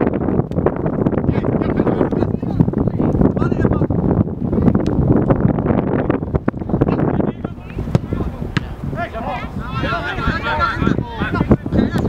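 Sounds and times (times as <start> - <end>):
wind buffeting microphone: 0.0 - 12.0
distant players shouting: 7.3 - 12.0.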